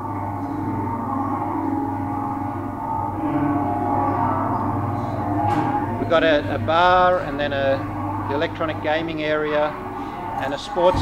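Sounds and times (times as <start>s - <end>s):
ambient drone music: 0.0s - 11.0s.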